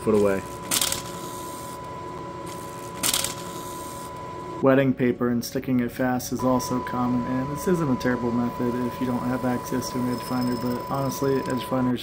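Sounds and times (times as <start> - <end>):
mill spindle whine: 0.0 - 4.6, 6.4 - 12.0.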